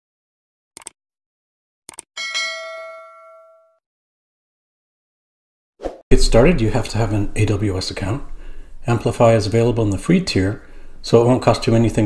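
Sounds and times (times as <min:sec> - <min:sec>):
bright bell chime: 0:02.2 - 0:03.8.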